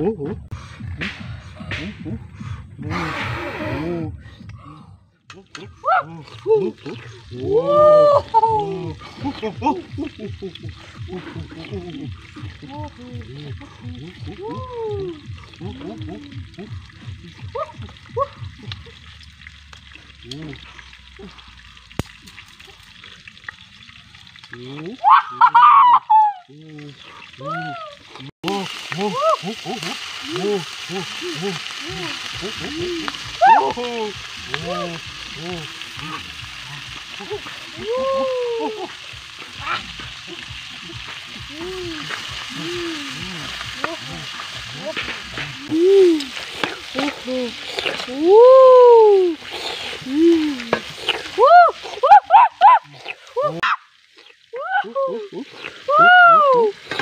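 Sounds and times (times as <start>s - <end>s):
voice-like oh calls: 5.2s - 19.1s, 24.6s - 56.8s
food sizzling in a pan: 26.6s - 57.0s.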